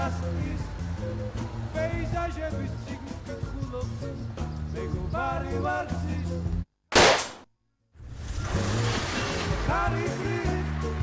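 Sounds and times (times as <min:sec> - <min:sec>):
background music: 0:00.0 - 0:06.7, 0:08.2 - 0:11.0
loud pistol shot: 0:06.9 - 0:07.5.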